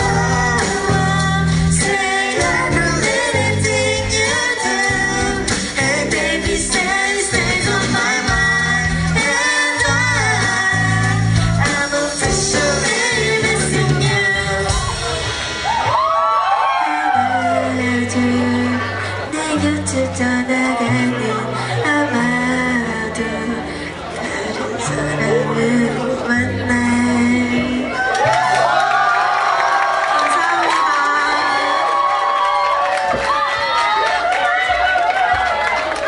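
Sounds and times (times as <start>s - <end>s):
bass and keyboard chord: 0.0s - 15.8s, 17.1s - 28.0s
live pop band playing: 0.0s - 28.2s
audience whooping: 14.7s - 17.9s, 27.9s - 36.0s.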